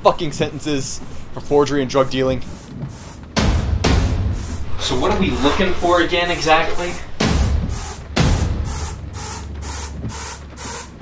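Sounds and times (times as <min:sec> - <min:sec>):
rhythmic hiss pulses: 0:00.0 - 0:11.0
low bass drone: 0:03.4 - 0:10.1.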